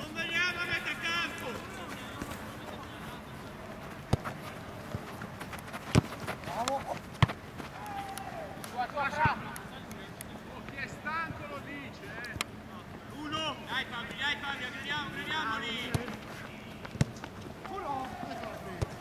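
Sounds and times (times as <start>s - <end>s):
players calling and shouting: 0.0s - 19.0s
ball kicked thuds: 4.0s - 5.0s, 5.7s - 7.4s.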